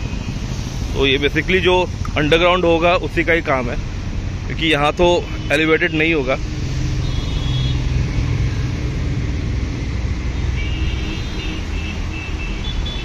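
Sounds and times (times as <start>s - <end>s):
city road traffic rumble: 0.0s - 13.0s.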